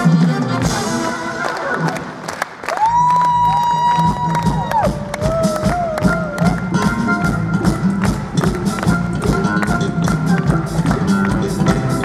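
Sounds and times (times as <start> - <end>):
live band music: 0.0 - 12.0
audience clapping and cheering: 0.4 - 12.0.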